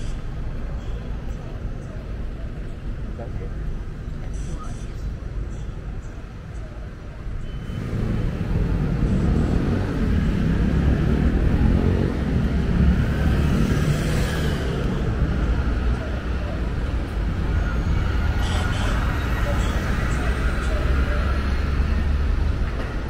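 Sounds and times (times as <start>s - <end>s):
heavy vehicle engine rumble: 0.0s - 23.0s
vehicle passing: 7.7s - 23.0s.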